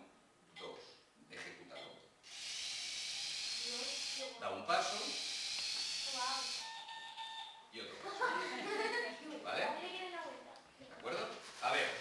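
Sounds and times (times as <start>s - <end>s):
small gear motors whirring: 2.2s - 6.9s.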